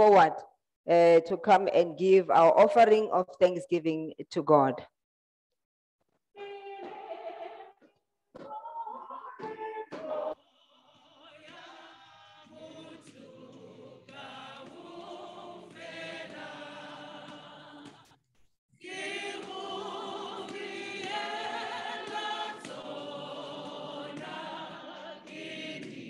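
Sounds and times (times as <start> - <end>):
church choir singing: 10.0 - 18.2, 18.8 - 26.0.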